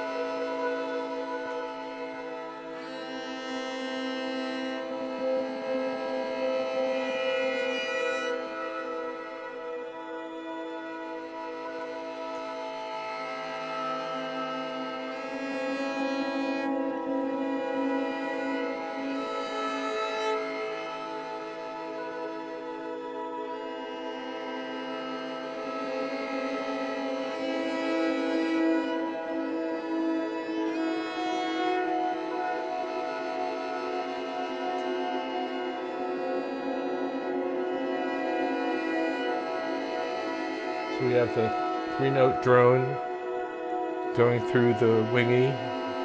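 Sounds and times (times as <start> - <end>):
bowed string drone: 0.0 - 46.0.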